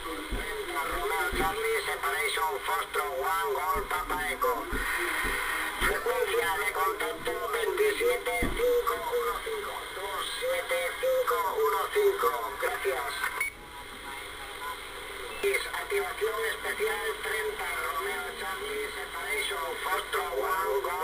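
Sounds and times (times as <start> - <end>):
narrow-band radio voice: 0.0 - 14.6, 15.4 - 21.0
radio static: 0.0 - 21.0.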